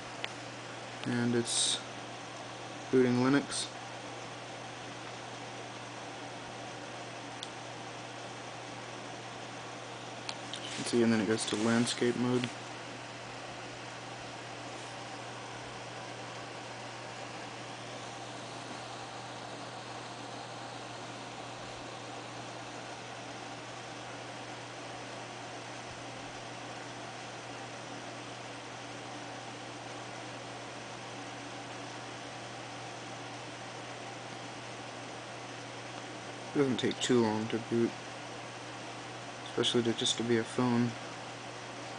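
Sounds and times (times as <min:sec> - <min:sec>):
constant low hum: 0:00.0 - 0:41.9.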